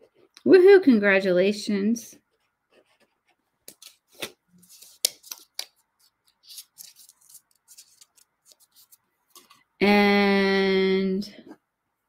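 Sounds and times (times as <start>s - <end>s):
paper rustling: 2.8s - 9.6s.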